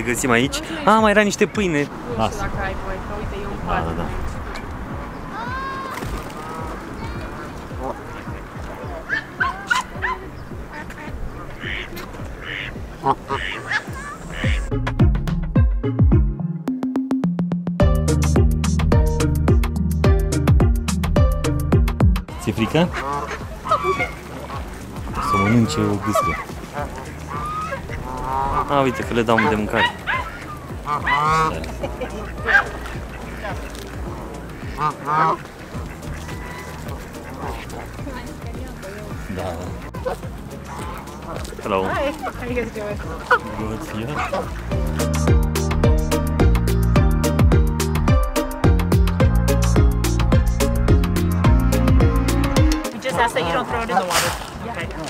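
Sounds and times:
geese honking: 0.0 - 14.8, 22.3 - 55.0.

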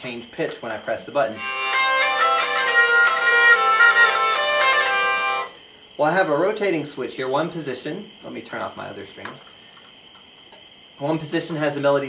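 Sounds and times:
hurdy-gurdy drone: 1.3 - 5.6
hurdy-gurdy melody: 1.3 - 5.6.

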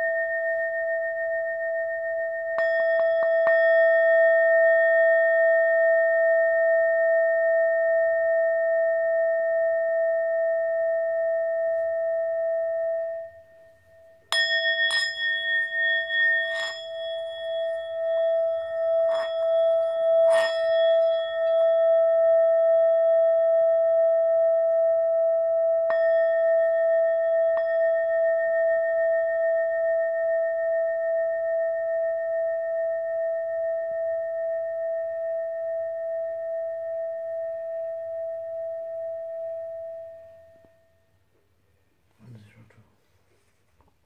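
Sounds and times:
singing bowl ringing: 0.0 - 41.0.

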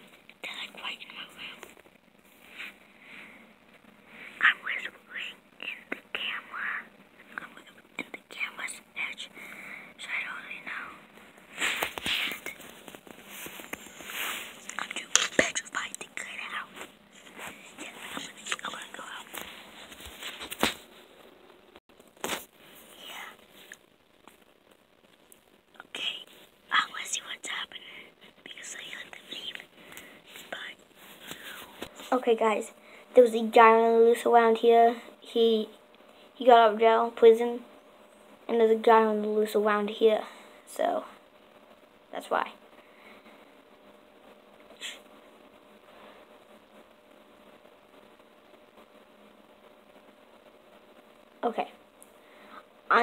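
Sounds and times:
person whispering: 0.4 - 1.7, 4.3 - 9.4, 10.0 - 12.7, 13.3 - 19.9, 22.8 - 23.8, 25.8 - 29.7, 30.3 - 32.7, 44.8 - 45.0.

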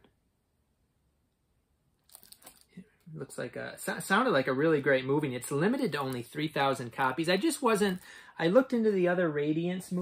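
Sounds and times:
plastic packing material crinkling: 2.1 - 2.8.

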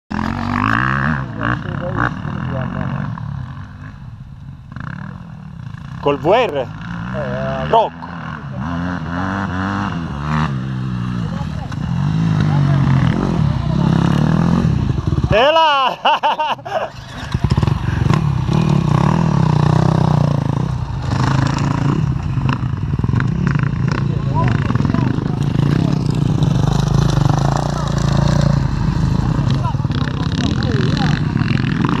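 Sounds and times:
motorcycle engine revving: 0.1 - 32.0.

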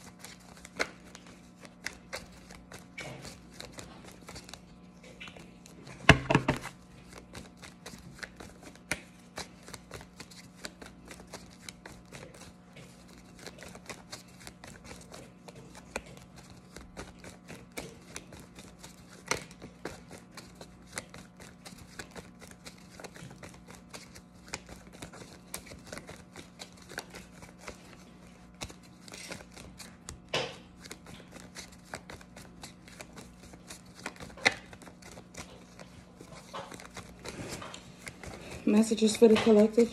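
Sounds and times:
cards being shuffled: 0.0 - 39.9.

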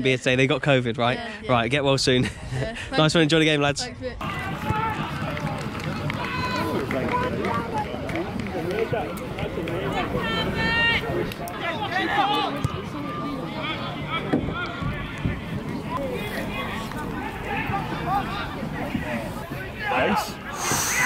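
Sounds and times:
outdoor crowd hubbub: 0.0 - 21.0
people shouting: 4.2 - 7.9, 9.8 - 21.0.

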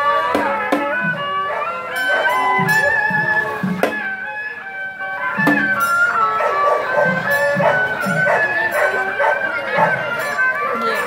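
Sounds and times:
hand drum beats: 0.0 - 11.0
nasal wind instrument melody: 0.0 - 11.0
percussion hits: 0.0 - 11.0.

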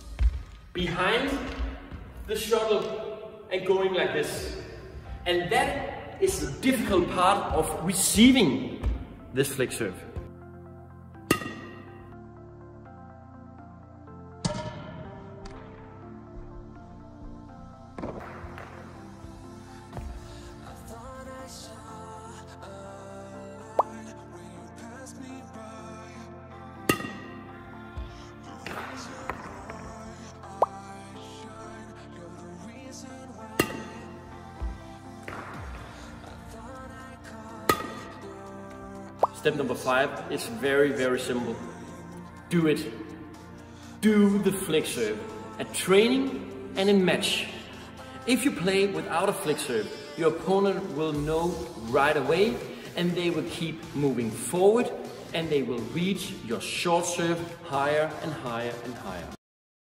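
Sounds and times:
background music: 0.0 - 59.4
racket hitting shuttlecock: 11.2 - 12.1, 14.4 - 15.8, 18.0 - 19.2, 26.8 - 27.5, 28.6 - 29.8, 33.6 - 36.4, 37.6 - 38.3.

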